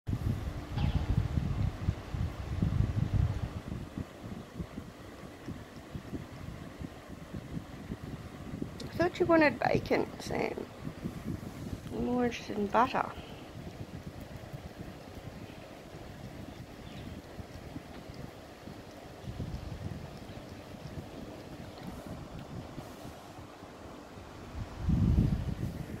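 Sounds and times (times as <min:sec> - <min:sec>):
low burst of wind: 0:00.1 - 0:26.0
wind rumble on microphone: 0:00.1 - 0:26.0.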